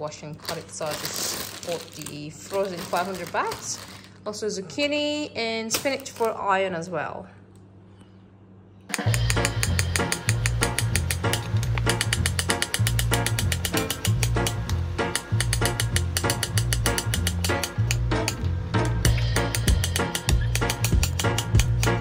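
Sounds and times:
music with quick beat and bass: 9.0s - 22.0s.

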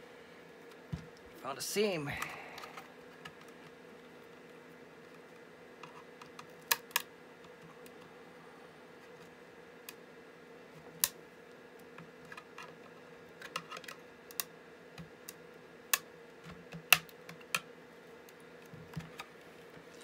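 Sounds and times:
sharp plastic clicks and snaps: 13.4s - 16.1s.

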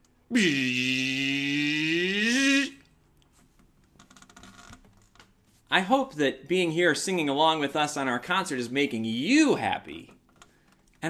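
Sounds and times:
man's drawn-out wordless vocal: 0.3s - 2.9s
faint rustling and clicks: 2.8s - 5.7s, 10.0s - 11.0s.

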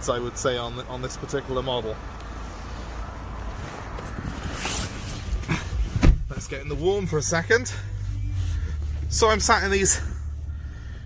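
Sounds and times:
rustling scrape: 3.4s - 5.8s.

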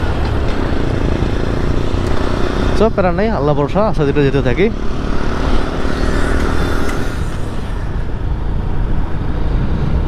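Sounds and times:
wind rushing over microphone: 0.0s - 10.0s.

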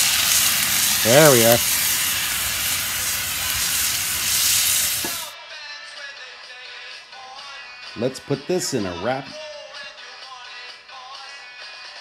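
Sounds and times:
food sizzling in a skillet: 0.0s - 5.4s
quiet background music: 5.3s - 12.0s.

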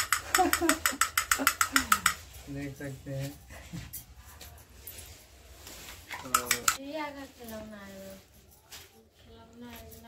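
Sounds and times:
toy monkey plastic clacks: 0.0s - 2.2s, 6.2s - 6.8s
person speaking: 6.1s - 6.8s.

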